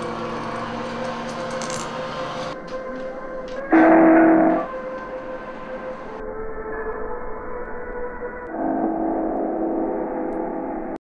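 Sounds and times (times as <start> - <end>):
drone of held tones: 0.0 - 11.0
loud held chord: 0.0 - 11.0.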